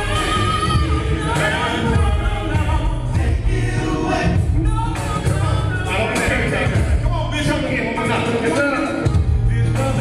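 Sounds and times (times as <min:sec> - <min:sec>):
male quartet singing in harmony: 0:00.0 - 0:07.0
music accompaniment with heavy bass: 0:00.0 - 0:10.0.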